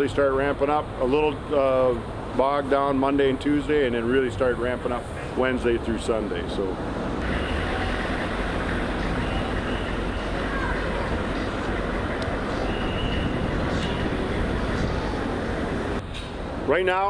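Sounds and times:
diesel truck engine running: 6.3 - 16.7.

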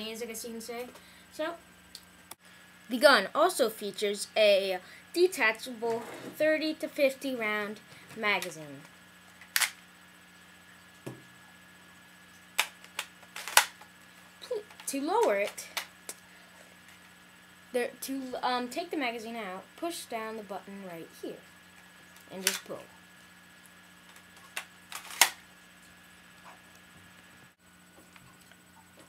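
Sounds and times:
plastic magazine clicks: 9.5 - 9.8, 24.6 - 25.4.

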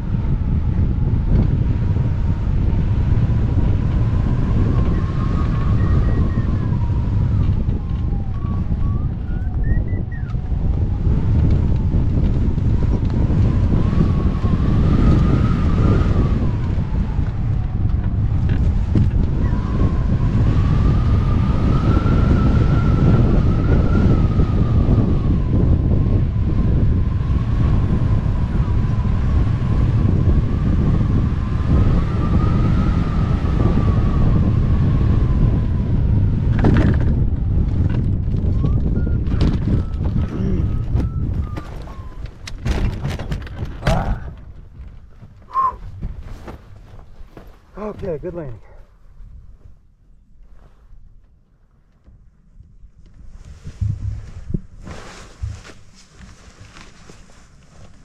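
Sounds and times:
wind rushing over microphone: 0.0 - 58.0
thin whistling tone: 5.0 - 6.8, 8.4 - 10.4, 38.6 - 42.2, 45.5 - 45.8
rustling: 40.8 - 48.2, 53.0 - 58.0
dull thumps: 53.6 - 56.7.

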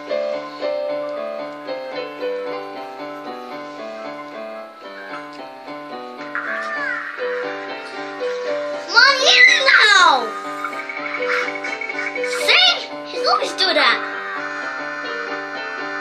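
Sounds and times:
electronic keyboard melody: 0.0 - 16.0.

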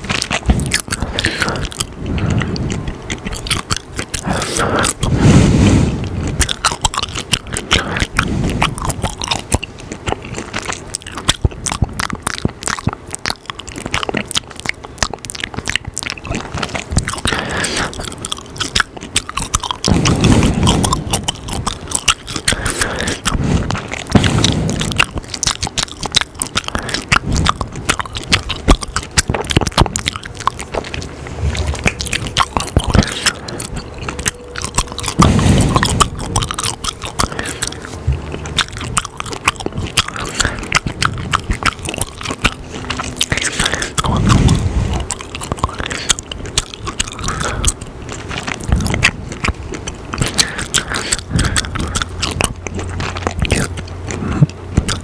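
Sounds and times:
gum chewing mouth smacks: 0.0 - 55.0.

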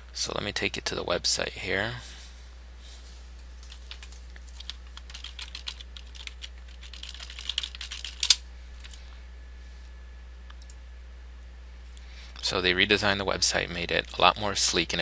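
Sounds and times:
steady low hum: 0.0 - 15.0
computer keyboard typing: 3.6 - 9.0.

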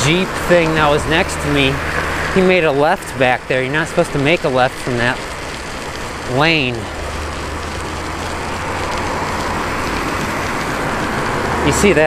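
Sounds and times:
car overtaking: 0.0 - 12.0
tyres hissing on wet road: 0.0 - 12.0.

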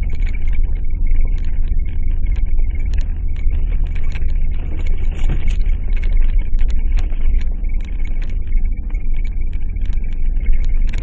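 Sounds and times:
engine and road rumble: 0.0 - 11.0
faint high whine: 0.0 - 11.0.

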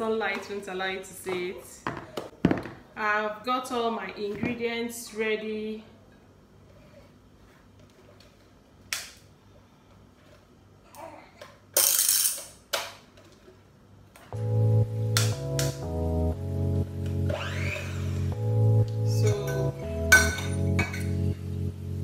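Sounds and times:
background music with keyboard: 14.3 - 22.0
kitchen handling sounds: 19.5 - 21.2.

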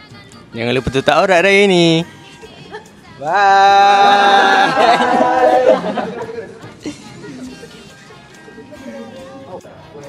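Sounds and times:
boys laughing and chattering: 2.4 - 10.0.

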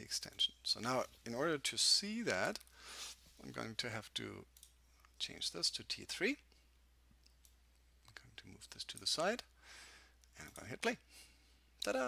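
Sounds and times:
person speaking: 0.0 - 2.7, 3.4 - 6.5, 8.0 - 9.6, 10.3 - 11.1, 11.8 - 12.0.

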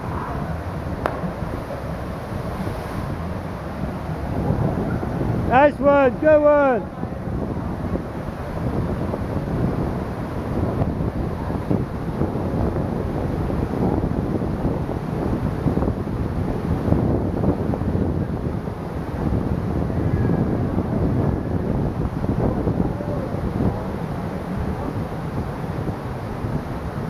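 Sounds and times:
river water rushing over rapids: 0.0 - 27.0
wind buffeting microphone: 0.0 - 27.0.

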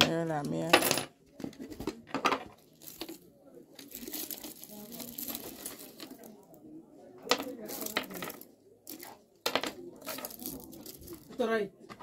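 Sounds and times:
small hard objects clinking: 2.3 - 3.2, 3.8 - 6.4, 7.3 - 11.4.

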